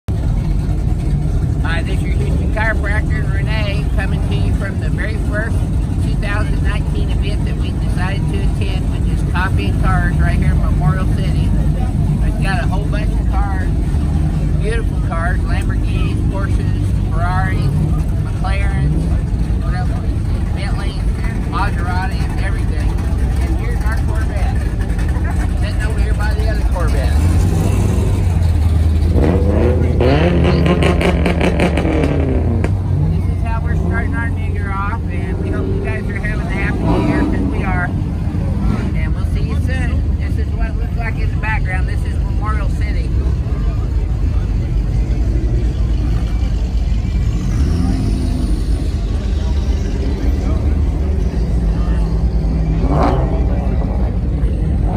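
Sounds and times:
car engines rumbling: 0.0s - 54.9s
engine revving: 0.1s - 54.9s
people talking: 1.6s - 27.9s, 29.7s - 31.7s, 33.0s - 54.9s.

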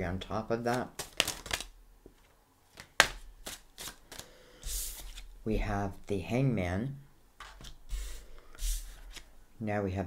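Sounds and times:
cards rustling: 0.6s - 5.3s
cards flicking and snapping: 0.7s - 1.7s, 2.7s - 4.3s.

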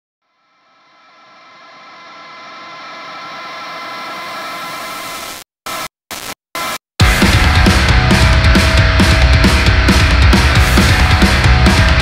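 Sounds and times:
droning noisy metal music: 7.0s - 12.0s.

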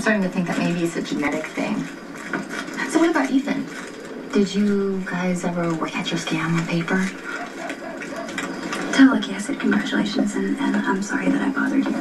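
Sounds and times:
faint pitched background tone: 0.0s - 12.0s
rapid light clicking: 5.4s - 9.6s.

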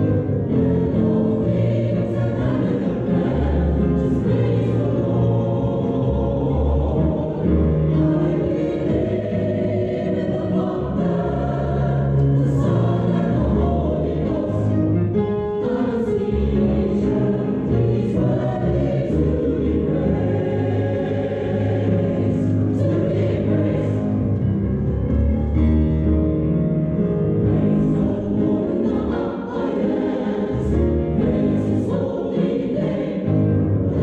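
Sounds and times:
church choir singing: 0.0s - 34.0s.

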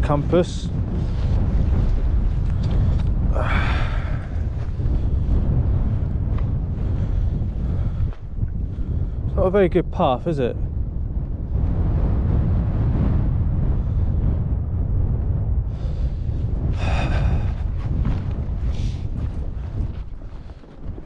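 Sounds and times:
strong wind buffeting microphone: 0.0s - 21.0s.

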